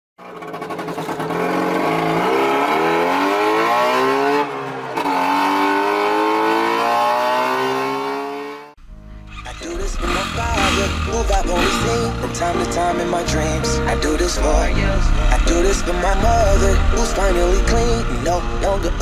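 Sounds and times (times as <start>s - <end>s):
engine revving up: 0.3s - 19.0s
low rumble: 9.2s - 19.0s.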